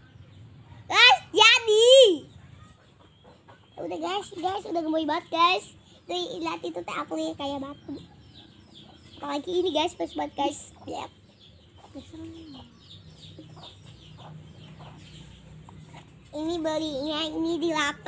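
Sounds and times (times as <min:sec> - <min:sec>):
child's voice: 0:00.9 - 0:02.4, 0:03.8 - 0:08.1, 0:09.2 - 0:11.2, 0:11.8 - 0:12.8, 0:16.3 - 0:18.0
chickens clucking: 0:02.3 - 0:17.9.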